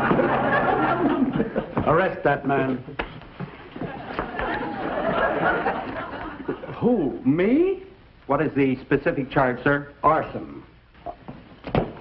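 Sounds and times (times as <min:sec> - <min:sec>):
audience laughing: 0:00.0 - 0:02.0, 0:03.5 - 0:06.8.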